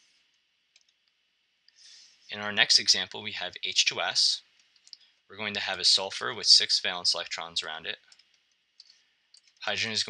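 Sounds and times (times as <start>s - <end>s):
soft breath: 1.7s - 2.3s.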